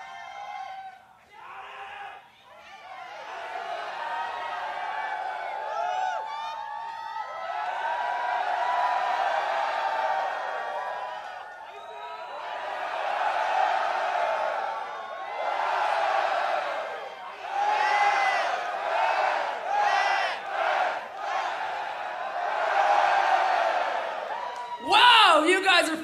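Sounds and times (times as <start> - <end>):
concert crowd cheering: 0.0 - 26.0.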